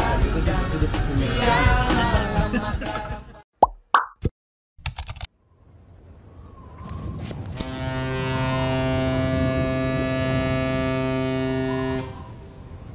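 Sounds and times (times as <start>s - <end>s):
sustained synth chord: 7.6s - 12.9s.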